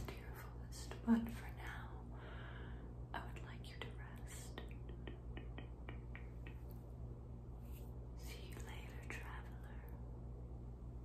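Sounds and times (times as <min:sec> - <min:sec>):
soft whispering: 0:00.0 - 0:02.2, 0:03.1 - 0:07.0, 0:07.6 - 0:10.1
mouth clicks and lip sounds: 0:04.6 - 0:06.9.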